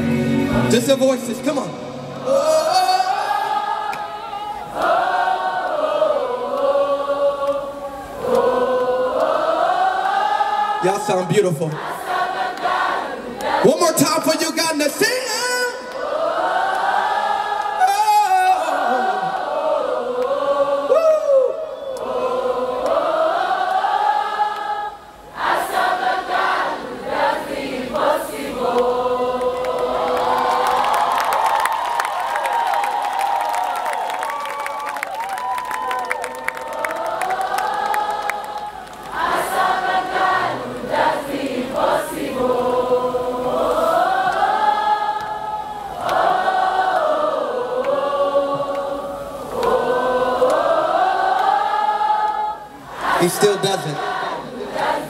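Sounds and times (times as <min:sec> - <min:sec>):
crowd singing unaccompanied: 0:00.0 - 0:00.8, 0:01.9 - 0:32.2, 0:36.1 - 0:55.0.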